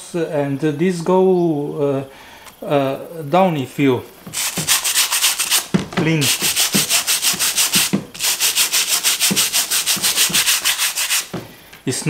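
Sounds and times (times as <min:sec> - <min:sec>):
wire brush scrubbing sanding disc: 0:04.3 - 0:11.4.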